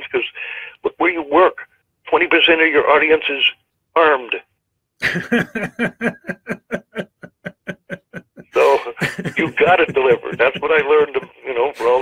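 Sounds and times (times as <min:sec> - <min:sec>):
man laughing: 0:05.0 - 0:12.0.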